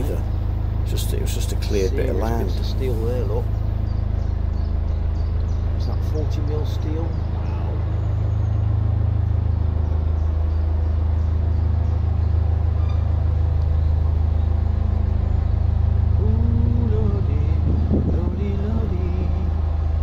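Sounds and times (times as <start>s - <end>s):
boat diesel engine running: 0.0s - 20.0s.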